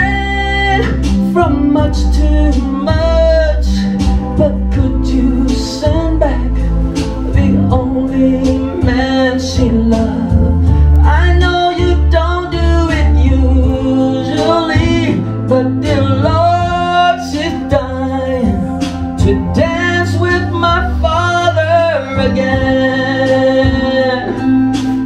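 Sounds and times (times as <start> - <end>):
man singing into microphone: 0.0 - 25.0
recorded backing track: 0.0 - 25.0.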